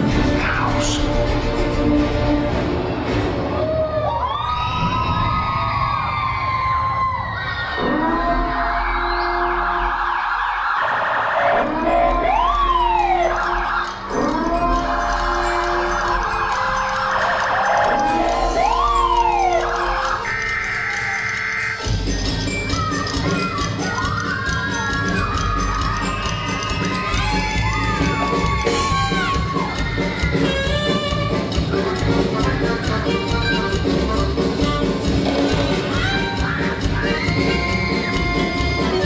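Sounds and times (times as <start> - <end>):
police sirens wailing: 3.5 - 30.3.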